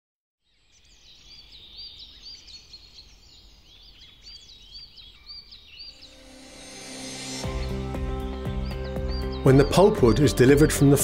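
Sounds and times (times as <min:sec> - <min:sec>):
birds chirping: 0:00.4 - 0:11.0.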